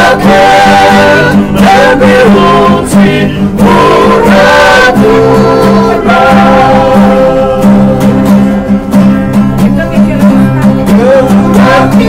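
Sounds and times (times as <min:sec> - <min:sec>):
men singing in harmony: 0:00.0 - 0:09.1, 0:10.9 - 0:12.0
acoustic guitars strummed: 0:00.0 - 0:12.0.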